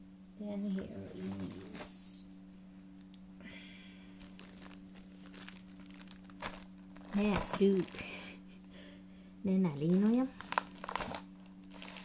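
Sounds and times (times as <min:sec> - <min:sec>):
low hum: 0:00.0 - 0:12.0
plastic packaging crinkling: 0:01.0 - 0:02.0, 0:04.1 - 0:08.4, 0:09.8 - 0:12.0.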